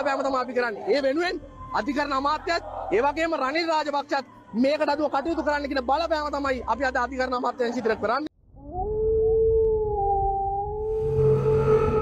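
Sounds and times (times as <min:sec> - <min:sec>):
wolf howl: 0:08.6 - 0:12.0.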